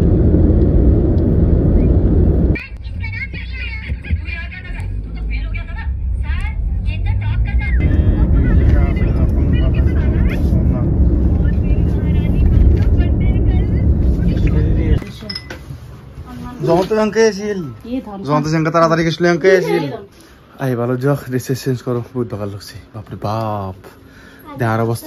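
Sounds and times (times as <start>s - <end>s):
road and engine rumble: 0.0s - 18.3s.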